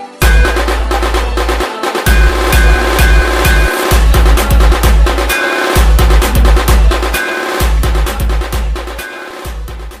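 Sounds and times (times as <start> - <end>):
dance remix with heavy drums: 0.2 - 10.0.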